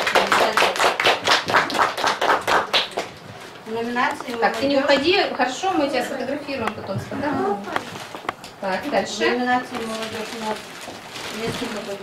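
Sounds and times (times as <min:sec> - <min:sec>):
people clapping: 0:00.0 - 0:03.3.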